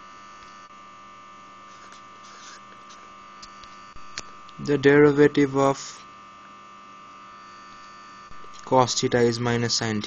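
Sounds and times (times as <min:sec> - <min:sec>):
electrical hum: 0:00.0 - 0:10.0
marker scratching on paper: 0:01.7 - 0:03.0.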